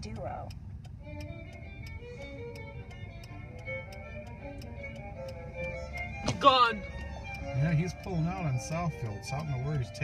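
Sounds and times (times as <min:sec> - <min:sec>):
sharp ticking: 0:00.0 - 0:10.0
soft music: 0:00.0 - 0:10.0.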